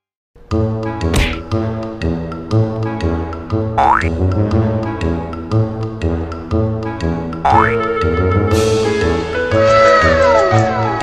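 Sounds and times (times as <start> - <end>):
upbeat background music: 0.5 - 11.0.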